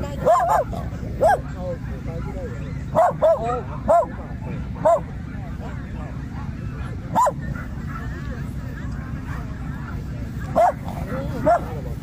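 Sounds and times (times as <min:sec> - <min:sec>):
distant dogs barking: 0:00.0 - 0:12.0
dog barking: 0:00.2 - 0:01.5, 0:02.9 - 0:04.2, 0:04.8 - 0:05.1, 0:07.1 - 0:08.2, 0:10.5 - 0:11.8.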